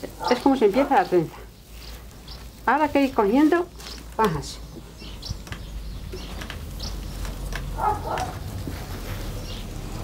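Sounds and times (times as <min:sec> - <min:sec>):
grass stems rustling: 0:00.0 - 0:10.0.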